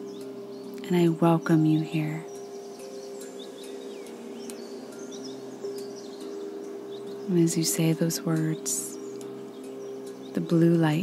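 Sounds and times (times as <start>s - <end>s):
bird-like chirps: 0.0s - 11.0s
steady low drone: 0.0s - 11.0s.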